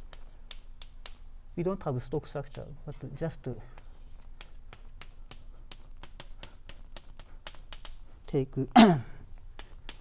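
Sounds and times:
chalk tapping on blackboard: 0:00.0 - 0:01.3, 0:03.7 - 0:08.4, 0:09.5 - 0:10.0.

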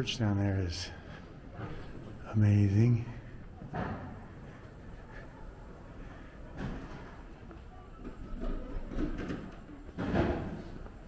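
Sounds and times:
faint indistinct voices: 0:00.0 - 0:11.0.

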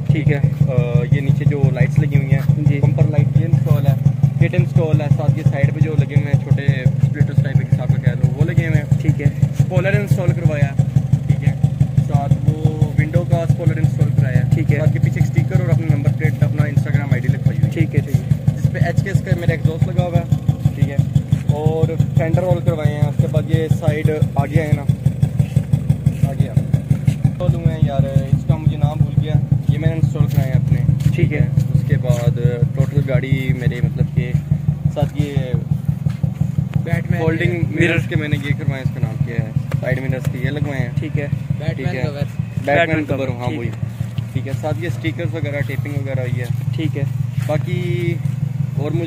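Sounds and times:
car engine idling: 0:00.0 - 0:49.0
voices talking: 0:00.0 - 0:49.0.

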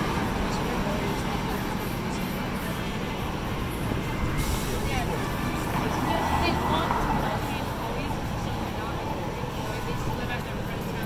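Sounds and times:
pedestrians talking: 0:00.0 - 0:11.0
steady traffic noise: 0:00.0 - 0:11.0.

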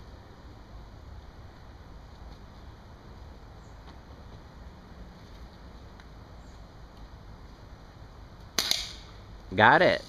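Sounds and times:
air rifle pop: 0:08.6 - 0:09.0.

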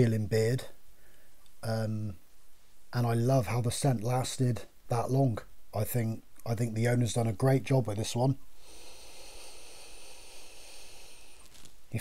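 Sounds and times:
man inhaling through nose: 0:08.6 - 0:11.8.

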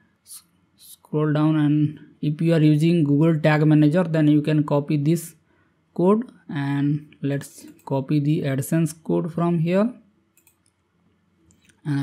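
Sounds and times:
person speaking: 0:00.2 - 0:05.4, 0:06.0 - 0:10.1, 0:11.5 - 0:12.0
faint computer mouse clicks: 0:10.3 - 0:10.8.

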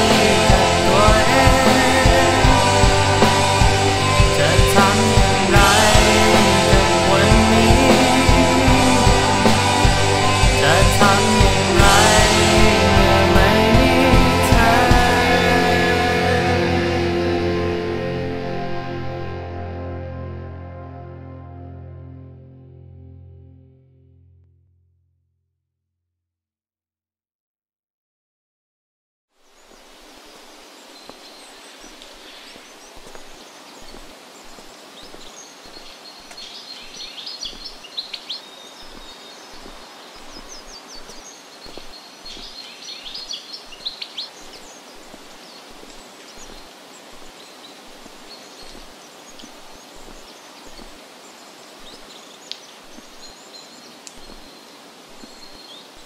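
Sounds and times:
birds chirping: 0:00.0 - 0:17.3, 0:29.4 - 0:56.0
background hiss: 0:00.0 - 0:19.4, 0:29.4 - 0:56.0.

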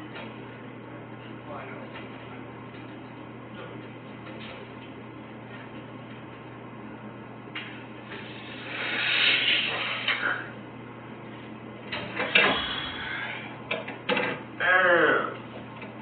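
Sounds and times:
man groaning: 0:12.5 - 0:13.5, 0:14.6 - 0:15.4.

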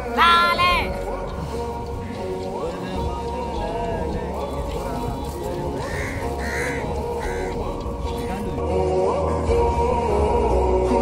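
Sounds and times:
background music: 0:00.0 - 0:11.0
crow cawing: 0:05.8 - 0:07.8.

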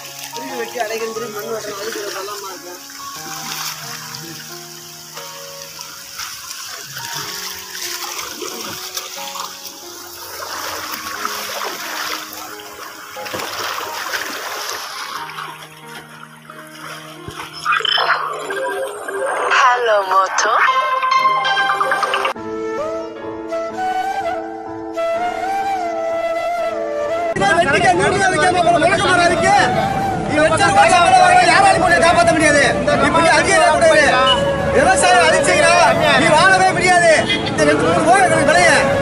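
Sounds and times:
water splashing and running: 0:00.0 - 0:20.8
background music with held notes: 0:00.0 - 0:39.0.

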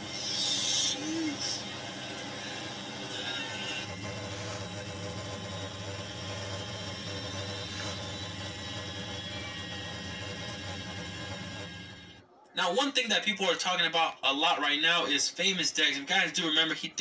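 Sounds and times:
aircraft cabin drone: 0:00.0 - 0:12.2.

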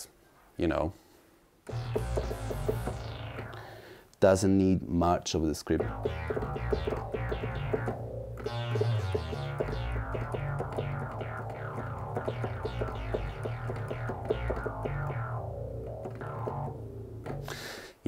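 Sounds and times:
fast synthesizer run: 0:01.7 - 0:03.9, 0:05.8 - 0:17.6
synthesizer bass line: 0:01.7 - 0:03.9, 0:05.8 - 0:17.6.

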